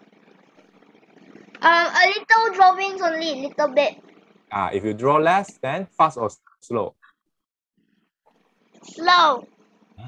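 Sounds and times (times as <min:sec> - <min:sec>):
child speaking: 0:01.6 - 0:04.0, 0:08.8 - 0:09.6.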